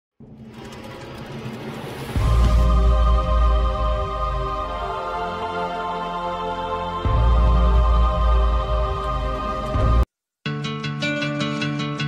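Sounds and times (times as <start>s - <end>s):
low hum: 0.2s - 6.2s
synthesized riser: 0.2s - 10.0s.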